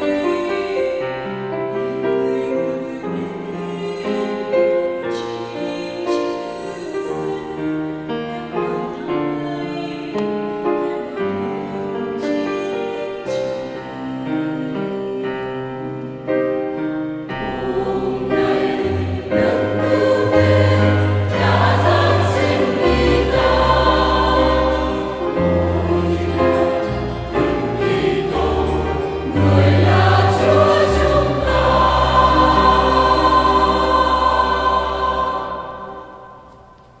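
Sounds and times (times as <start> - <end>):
mixed choir singing a hymn: 0.0 - 36.7
piano accompaniment: 0.0 - 37.0.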